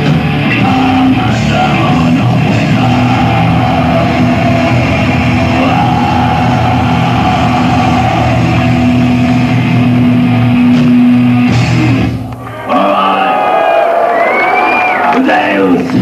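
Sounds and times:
distorted guitars droning chord: 0.0 - 12.5.

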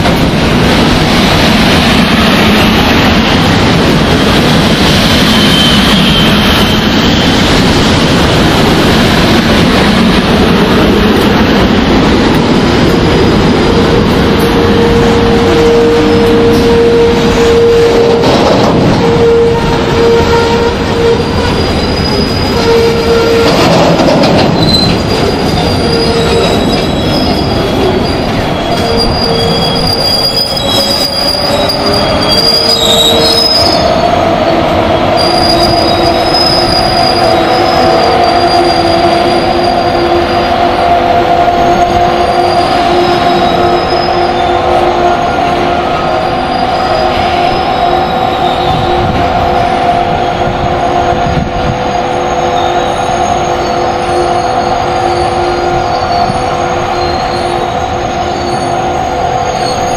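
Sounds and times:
train wheels rumbling on rails: 0.0 - 59.9
train wheels squealing: 4.8 - 7.6, 21.3 - 23.6, 24.3 - 34.0, 35.1 - 40.5, 41.9 - 44.6, 46.0 - 49.1, 51.8 - 59.9.

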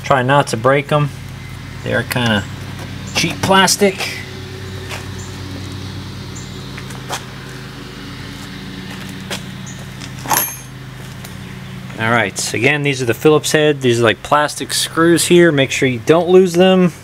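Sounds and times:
low machine hum: 0.0 - 17.0.

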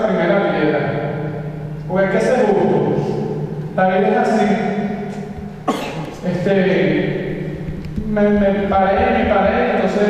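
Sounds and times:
man speaking into microphone: 0.0 - 5.3, 6.0 - 10.0
man coughing: 5.6 - 6.3.

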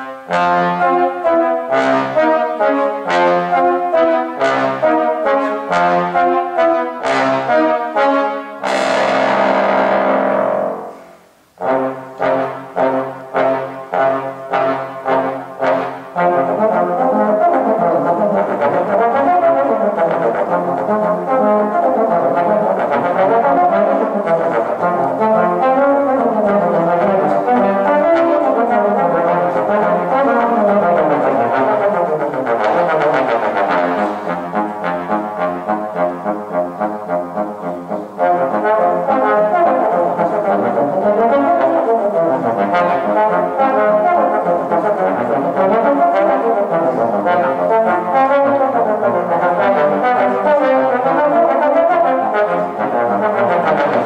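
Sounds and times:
bass trombones duet: 0.0 - 54.0.

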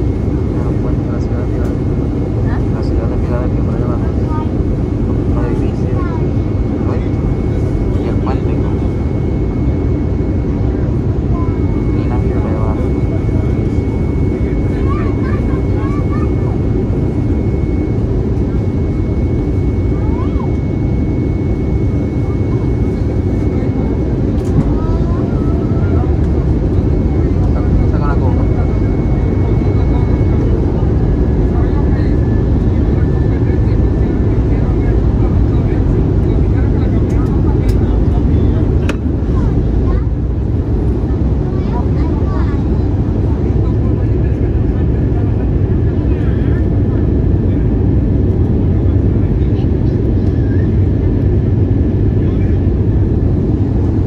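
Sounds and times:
airplane engine and airflow rumble: 0.0 - 54.0
faint passenger voices: 0.0 - 54.0.

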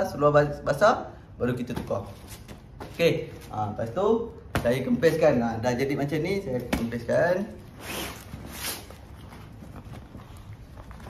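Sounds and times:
coated fabric rustling: 7.5 - 11.0.

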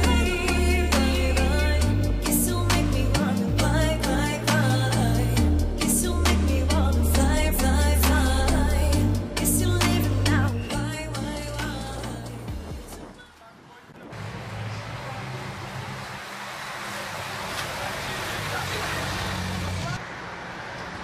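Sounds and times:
background music: 0.0 - 13.3
motor vehicle engine hum: 14.0 - 21.0
bikes rushing past: 14.1 - 21.0.

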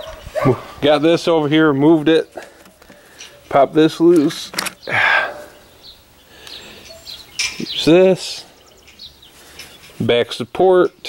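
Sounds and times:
metal parts being handled: 2.4 - 4.9
faint bird chirps: 4.8 - 10.0.

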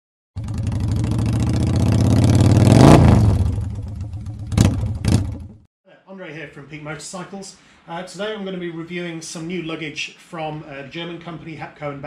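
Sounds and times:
motorcycle engine revving: 0.4 - 5.7.

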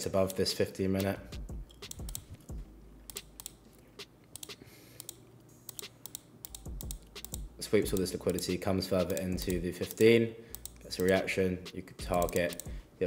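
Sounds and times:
low thumps: 1.3 - 2.8
mouse and keyboard clicks: 1.7 - 2.5, 3.1 - 11.3, 12.0 - 12.8.

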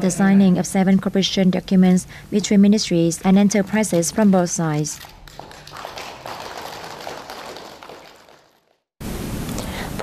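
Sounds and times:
low noise haze: 9.0 - 10.0.

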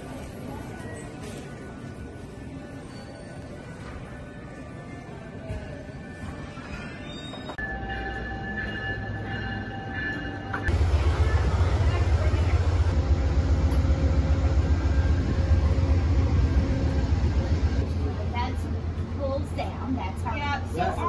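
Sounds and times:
train loud low rumble: 7.6 - 21.0
steady hum: 10.7 - 20.0.

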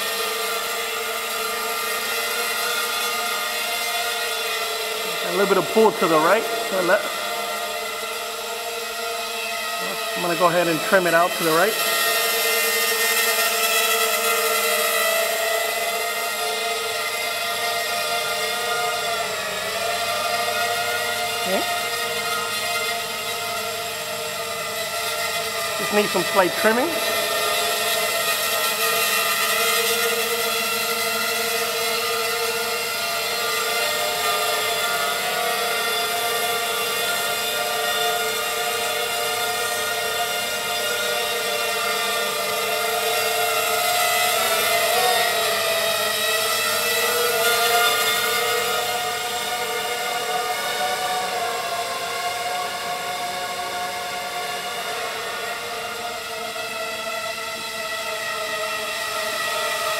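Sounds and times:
quadcopter motors whining: 0.0 - 59.9.

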